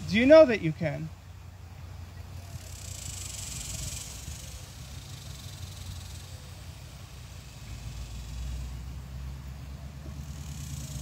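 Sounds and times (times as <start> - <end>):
faint high hiss: 0.0 - 11.0
low steady rumble: 0.0 - 11.0.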